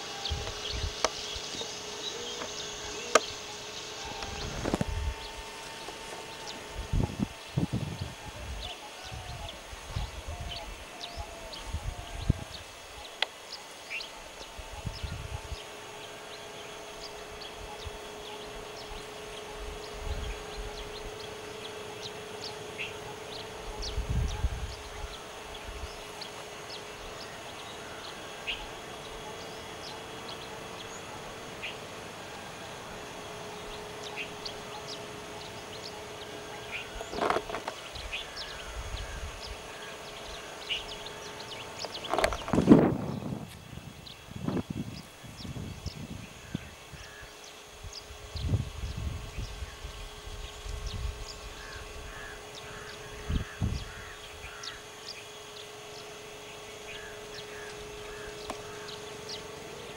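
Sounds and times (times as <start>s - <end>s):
bird chirps: 0.0s - 59.9s
faint steady hum: 0.0s - 59.9s.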